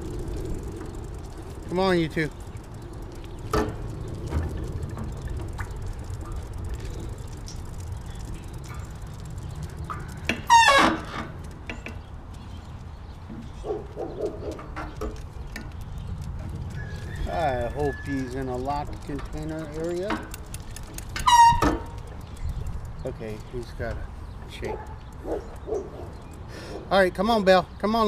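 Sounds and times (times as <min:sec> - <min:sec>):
low steady rumble: 0:00.0 - 0:26.3
footfalls and clicks on pavement: 0:00.0 - 0:26.9.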